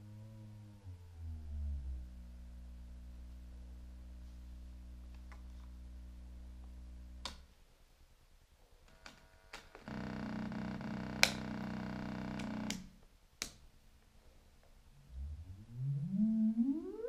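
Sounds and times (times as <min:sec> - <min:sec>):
synthesizer oscillator tones: 0:15.0 - 0:17.0.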